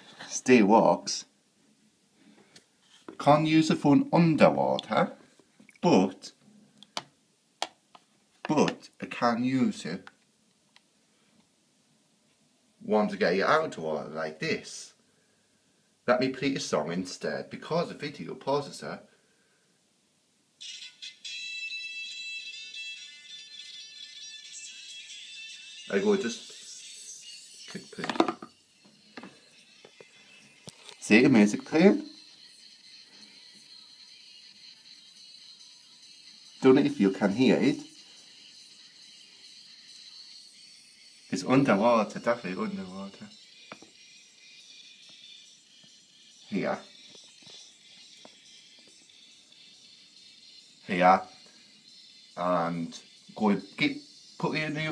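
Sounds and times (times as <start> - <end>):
song from phone speaker underwater: 20.6 - 31.0
song from tinny phone speaker: 20.6 - 54.9.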